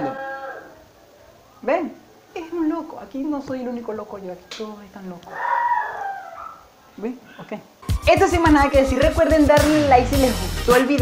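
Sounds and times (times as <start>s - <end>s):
dog whining: 5.3s - 6.7s
music beat: 7.8s - 11.0s.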